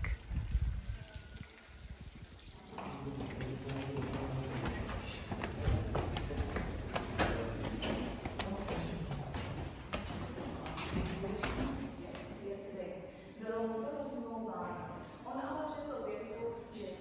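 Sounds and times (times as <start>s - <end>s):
footsteps on stone stairs: 2.7s - 12.4s.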